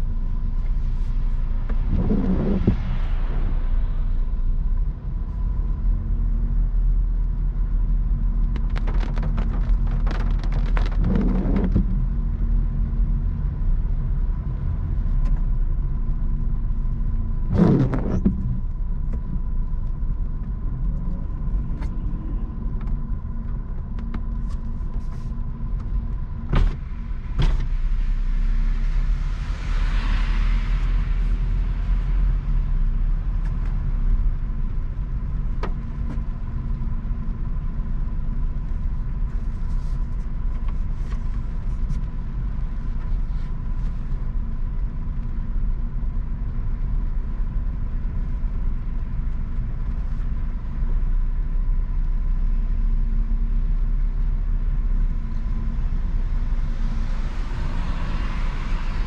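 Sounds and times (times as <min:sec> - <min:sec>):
car engine and tyres rumble: 0:00.0 - 0:59.0.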